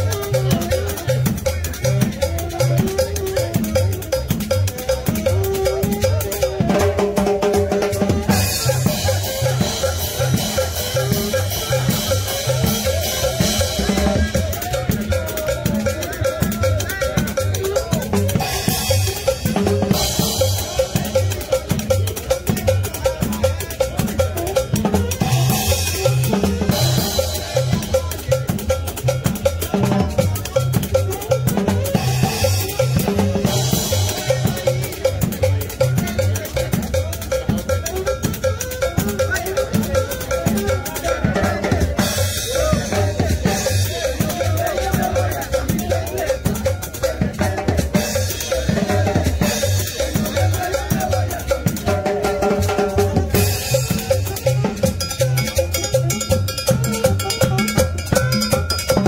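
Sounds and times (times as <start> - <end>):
live band dance music: 0.0 - 59.0.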